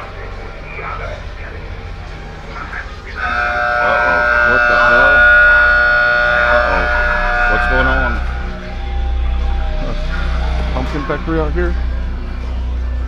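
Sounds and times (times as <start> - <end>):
steady electronic chord: 1.3 - 13.0
wavering voice-like sound: 3.1 - 11.0.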